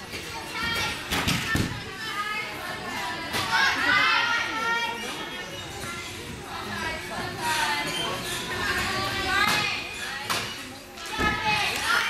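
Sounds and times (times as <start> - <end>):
young female voices chattering: 1.7 - 12.0.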